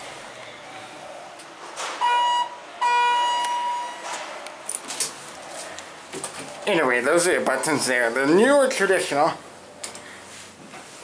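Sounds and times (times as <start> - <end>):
elevator chime dings: 2.0 - 4.1.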